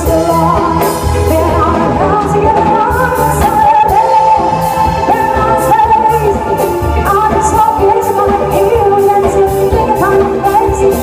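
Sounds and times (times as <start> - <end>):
bass guitar: 0.0 - 11.0
drum kit with cymbal hits: 0.0 - 11.0
woman singing lead: 0.0 - 11.0.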